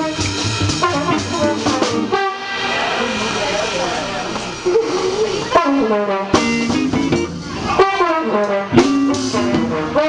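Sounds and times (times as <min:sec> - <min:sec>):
upright bass: 0:00.0 - 0:02.3, 0:03.0 - 0:10.0
trombone jazz solo: 0:00.0 - 0:03.8, 0:05.5 - 0:10.0
drums: 0:00.0 - 0:10.0
electric guitar: 0:00.0 - 0:10.0.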